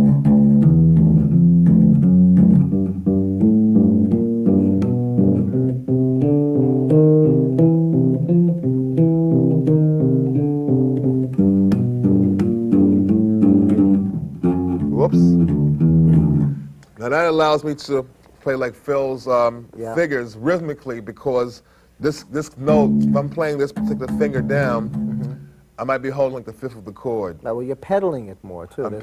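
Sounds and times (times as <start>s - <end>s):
electric bass guitar plucked notes: 0.0s - 16.8s, 22.6s - 25.6s.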